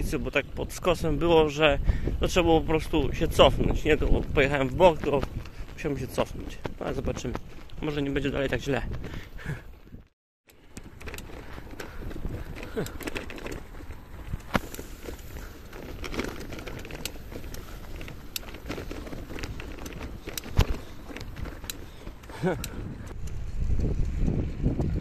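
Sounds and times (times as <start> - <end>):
bike rattling over ruts: 0.0 - 25.0
bike tyres rolling: 0.0 - 25.0.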